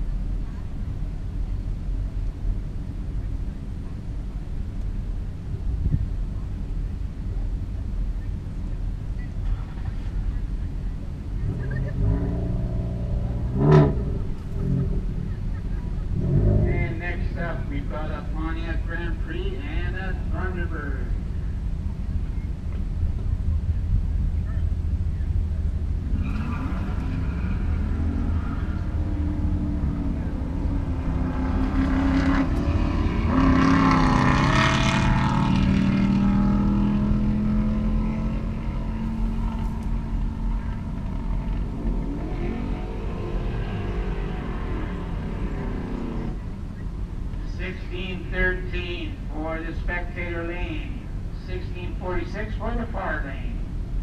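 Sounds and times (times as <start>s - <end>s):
vehicle engines idling: 0.0s - 54.0s
engine revving and moving off: 11.3s - 18.2s, 25.3s - 47.4s.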